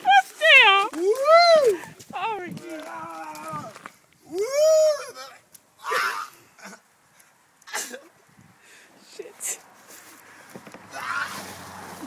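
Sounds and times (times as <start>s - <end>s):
person whooping yells: 0.0s - 6.4s, 10.9s - 11.4s.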